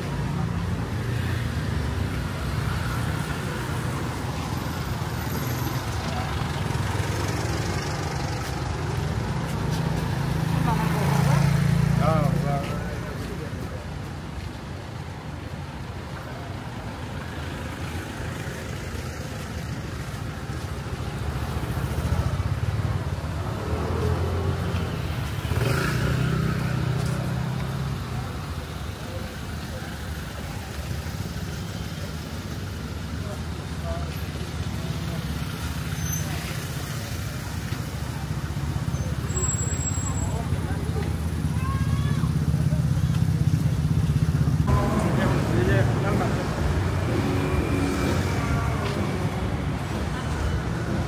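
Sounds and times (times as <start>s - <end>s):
traffic hum: 0.0s - 51.0s
people talking: 10.5s - 14.2s, 26.3s - 43.9s, 44.7s - 51.0s
vehicle passing: 42.4s - 51.0s.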